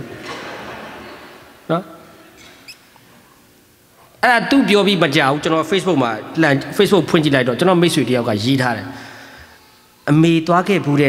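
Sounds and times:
echo of amplified voice: 0:04.2 - 0:11.0.

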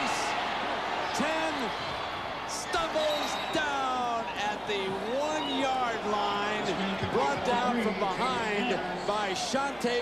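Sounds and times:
man's sports commentary voice: 0:01.1 - 0:01.8, 0:02.4 - 0:10.0.

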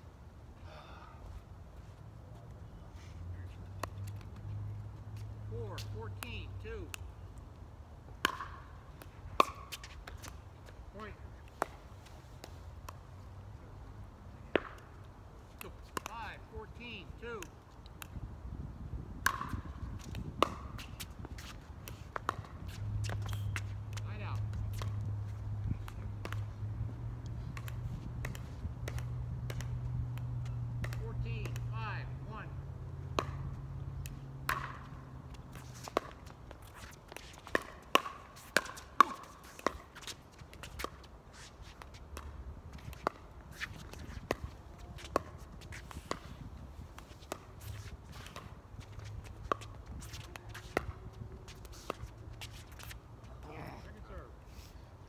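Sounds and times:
ball bouncing: 0:08.2 - 0:10.4, 0:14.5 - 0:15.0, 0:19.2 - 0:46.4, 0:47.0 - 0:52.9
shoe scuffs: 0:20.8 - 0:23.8, 0:35.6 - 0:37.5
paddles hitting plastic ball: 0:27.5 - 0:31.8, 0:33.1 - 0:41.1.

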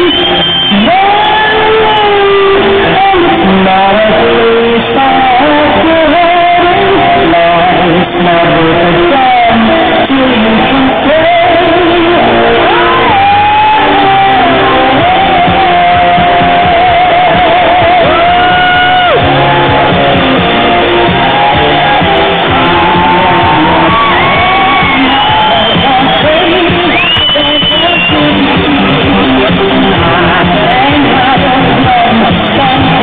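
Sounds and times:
loud amplified music: 0:00.0 - 0:33.0
person singing live: 0:00.0 - 0:33.0.

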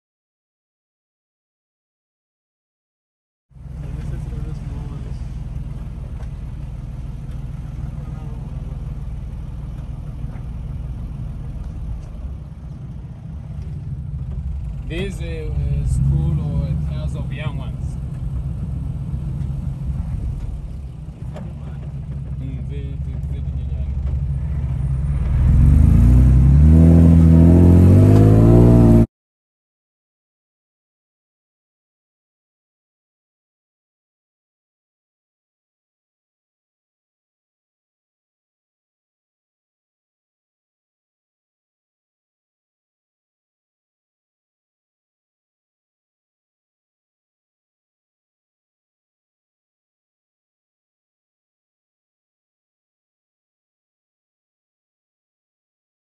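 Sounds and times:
vehicle engine idling: 0:03.6 - 0:28.8.

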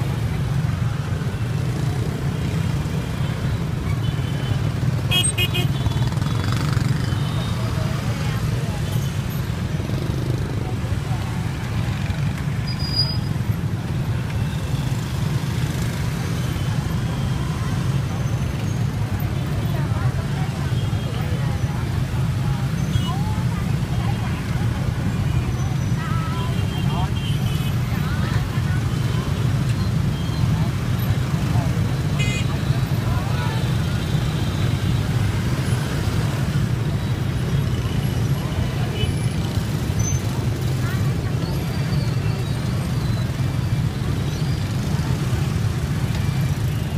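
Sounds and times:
motorbike traffic rumble: 0:00.0 - 0:46.9.

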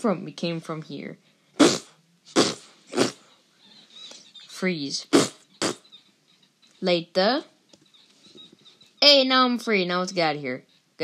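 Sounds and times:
child making mouth noises: 0:01.6 - 0:03.3, 0:05.1 - 0:05.8.

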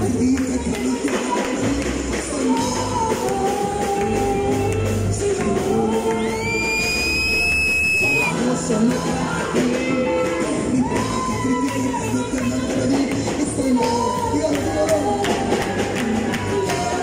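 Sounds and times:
man singing: 0:00.0 - 0:17.0.

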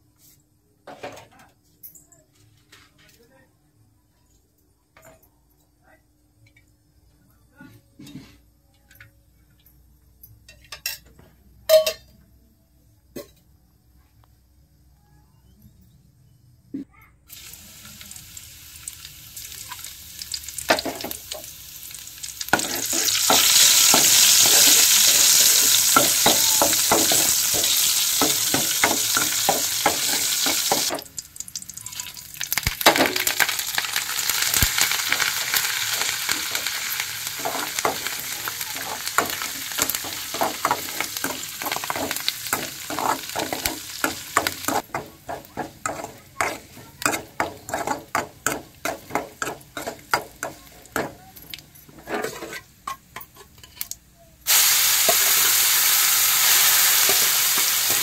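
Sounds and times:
hot oil sizzling: 0:17.3 - 0:58.0.

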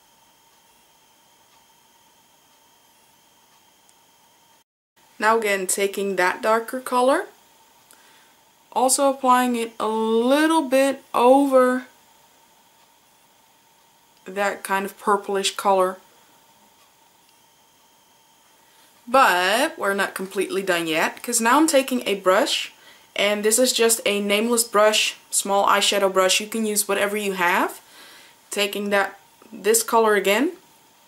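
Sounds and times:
faint steady hiss: 0:00.0 - 0:31.0.

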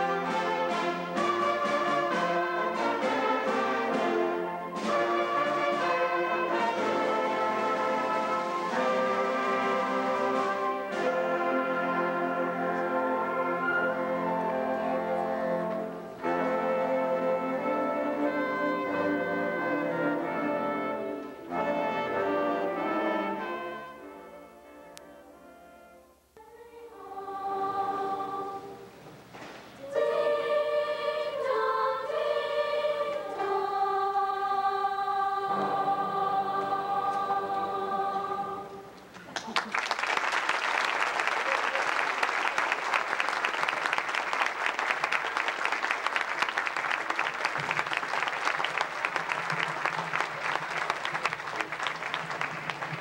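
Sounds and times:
choir singing held chords: 0:00.0 - 0:29.0, 0:29.8 - 0:39.0
audience applause: 0:39.1 - 0:53.0.

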